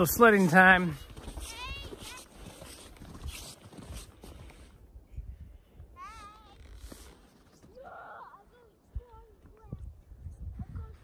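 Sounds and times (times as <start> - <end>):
footsteps crunching in snow: 0.0 - 4.8, 6.1 - 8.2
wind rumble on microphone: 8.9 - 11.0.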